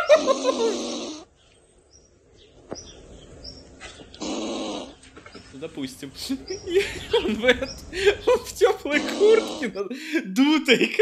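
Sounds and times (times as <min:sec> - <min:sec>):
faint scattered noises: 0:01.3 - 0:09.7.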